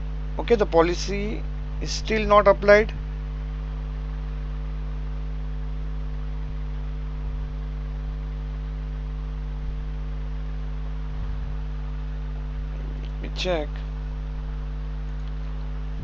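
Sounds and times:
electrical hum: 0:00.0 - 0:16.0.

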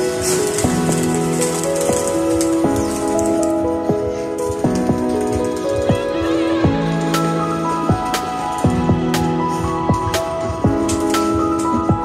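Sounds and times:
held melodic notes: 0:00.0 - 0:12.0.

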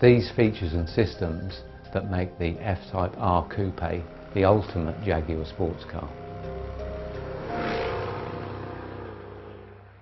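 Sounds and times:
car engine passing: 0:03.0 - 0:10.0.

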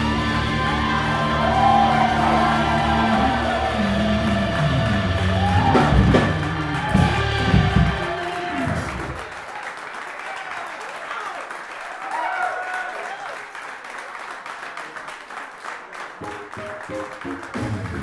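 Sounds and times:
live soul band playing: 0:00.0 - 0:09.2, 0:16.2 - 0:18.0
scattered applause: 0:00.0 - 0:18.0.

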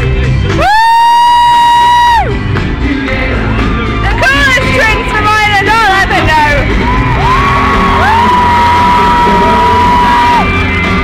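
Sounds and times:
live concert music: 0:00.0 - 0:11.0
crowd cheering: 0:06.6 - 0:11.0
high-pitched scream: 0:06.8 - 0:10.7.

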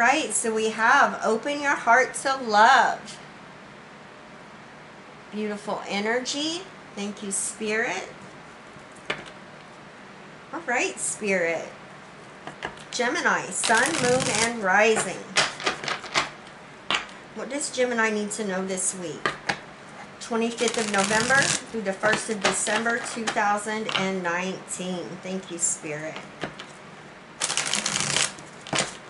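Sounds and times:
cards being shuffled: 0:13.6 - 0:14.6, 0:15.4 - 0:16.3, 0:20.6 - 0:23.3, 0:27.4 - 0:29.0.

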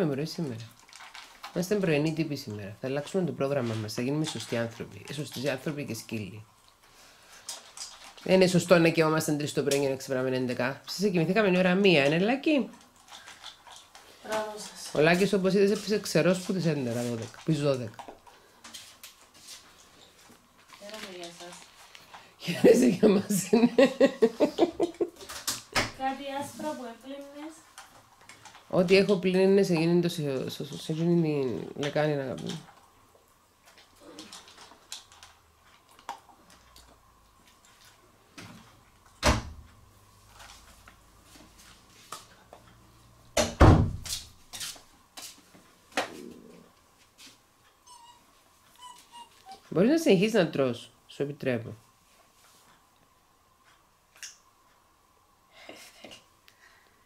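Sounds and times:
puppy crunching dry kibble: 0:00.4 - 0:06.1, 0:06.7 - 0:10.0, 0:11.5 - 0:22.4, 0:27.2 - 0:38.0
puppy whimpering: 0:47.8 - 0:49.7.

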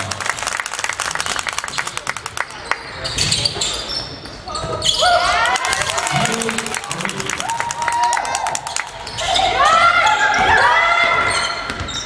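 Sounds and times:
sneaker squeaks: 0:03.0 - 0:05.2, 0:11.1 - 0:12.0.

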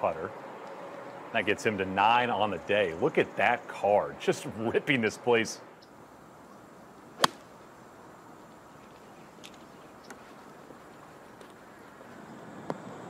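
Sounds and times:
faint outdoor air: 0:00.0 - 0:13.0
golf club striking ball: 0:07.2 - 0:07.5.

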